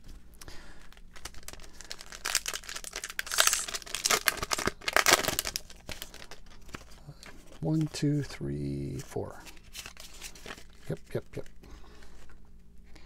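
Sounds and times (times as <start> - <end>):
foil wrapper crinkling and tearing: 0.4 - 7.8.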